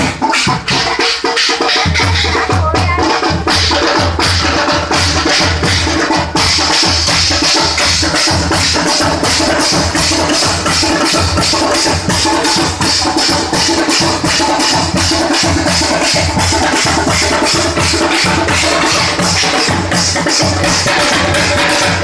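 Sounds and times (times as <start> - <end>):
fast driving drum beat: 0.0 - 22.0.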